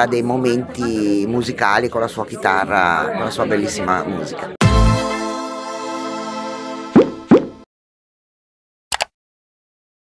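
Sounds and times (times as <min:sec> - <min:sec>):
held musical chord: 0:04.6 - 0:06.9
rising plop sound effects: 0:06.9 - 0:07.7.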